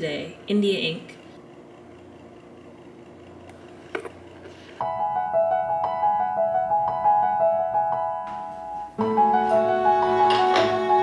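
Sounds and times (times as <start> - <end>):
piano music: 4.8 - 11.0.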